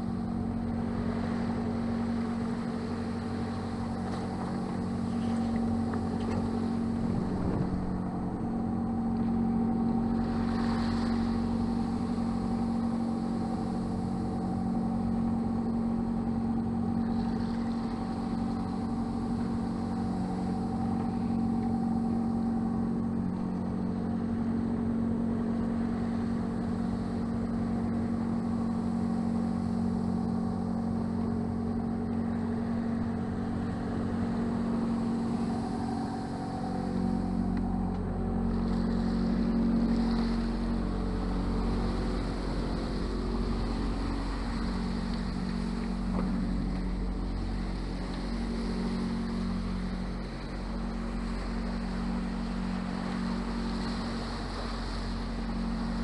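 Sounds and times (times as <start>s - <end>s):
boat engine droning: 0.0s - 56.0s
faint wind and water: 0.0s - 56.0s.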